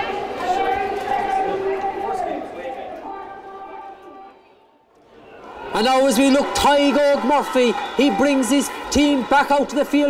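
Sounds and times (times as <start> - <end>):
stadium crowd: 0.0 - 10.0.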